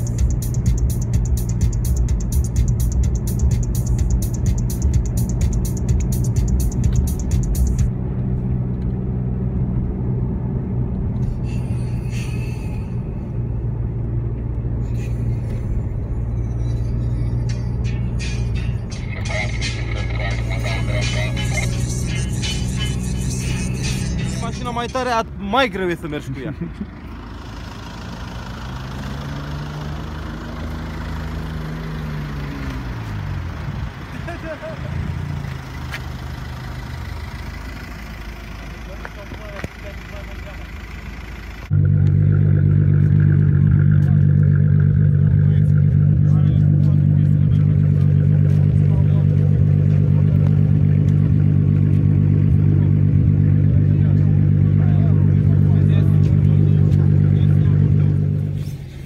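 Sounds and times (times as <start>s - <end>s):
car engine accelerating: 0.0s - 59.0s
car engine idling close-up: 11.0s - 59.0s.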